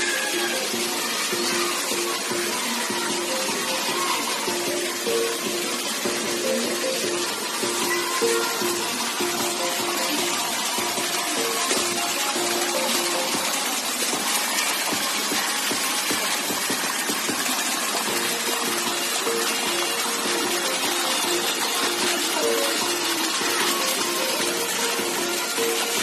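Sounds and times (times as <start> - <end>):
background music: 0.0 - 26.0
stream rushing over rocks: 0.0 - 26.0.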